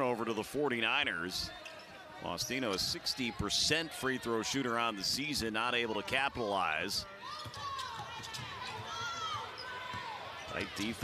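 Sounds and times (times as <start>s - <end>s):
players and fans voices: 0.0s - 11.0s.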